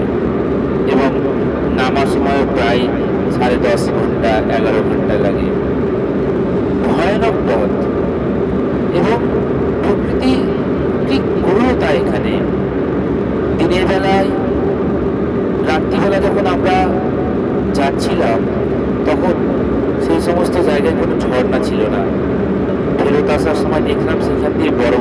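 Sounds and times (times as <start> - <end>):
voices talking: 0.9 - 5.5, 6.8 - 7.8, 8.9 - 12.5, 13.6 - 14.9, 19.1 - 25.0.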